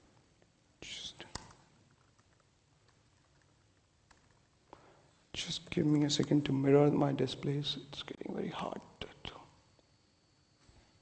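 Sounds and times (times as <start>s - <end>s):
man's breathy whisper: 0.8s - 1.4s, 8.5s - 9.6s.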